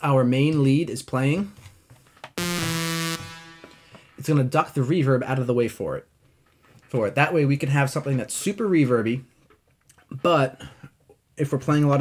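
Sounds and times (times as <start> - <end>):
buzzy synthesizer lead note: 2.4 - 4.2
reverb tail: 2.4 - 4.2.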